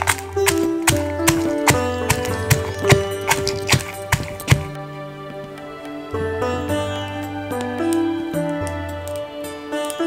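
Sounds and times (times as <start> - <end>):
pestle pounding in stone mortar: 0.0 - 4.8
music with long held notes: 0.0 - 10.0.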